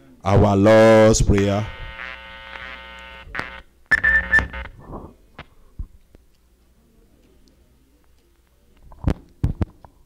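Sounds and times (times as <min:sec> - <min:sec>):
steady held tone: 0:00.8 - 0:04.8.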